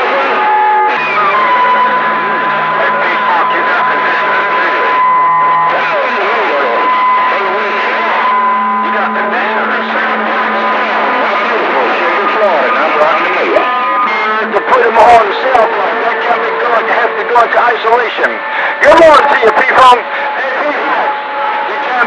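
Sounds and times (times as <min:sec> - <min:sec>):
garbled radio chatter: 0:00.0 - 0:22.0.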